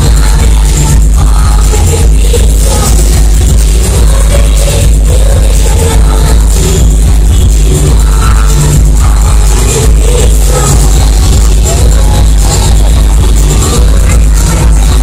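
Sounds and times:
heavy bass beat: 0.0 - 15.0
live dance-pop music: 0.0 - 15.0
woman singing into a microphone: 0.0 - 15.0.

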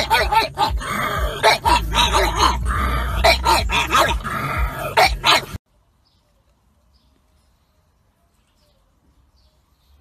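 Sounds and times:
dog barking and howling: 0.0 - 5.6.

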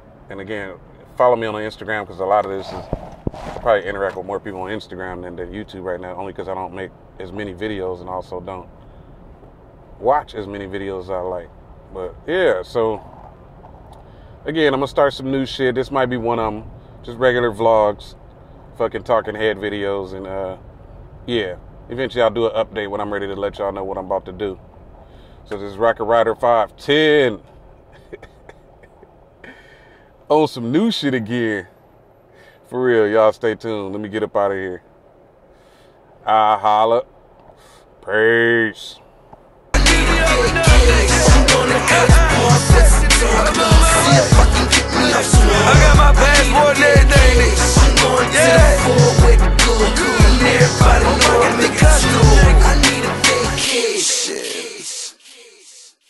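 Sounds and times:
low rumble inside car: 0.0 - 29.5, 39.4 - 52.9
thin hissy hip-hop music: 39.8 - 56.0.

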